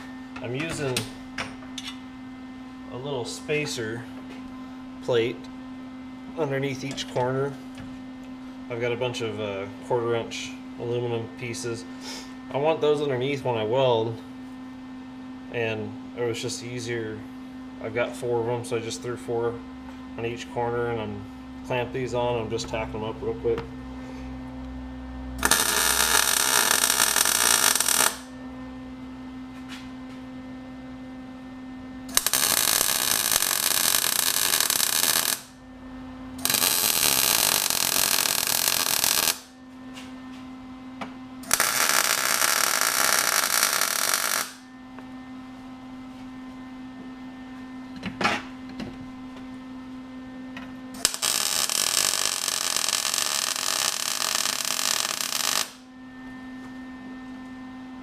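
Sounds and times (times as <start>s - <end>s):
welder humming: 0.0s - 5.6s, 25.3s - 30.0s, 30.8s - 45.2s, 50.9s - 56.3s
welding arc crackling and sizzling: 25.4s - 28.3s, 32.1s - 35.6s, 36.4s - 39.6s, 41.4s - 44.7s, 51.0s - 55.9s.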